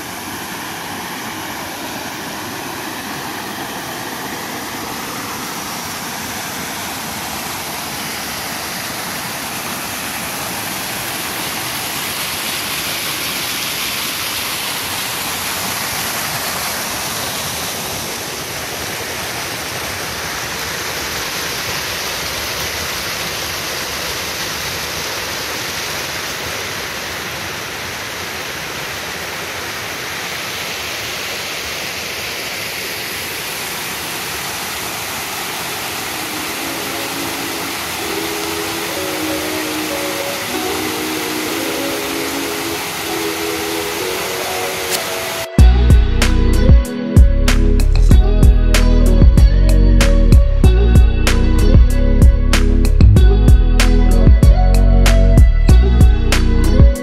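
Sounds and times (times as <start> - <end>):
small waterfall rushing: 0.0 - 48.2
faint music: 36.0 - 57.0.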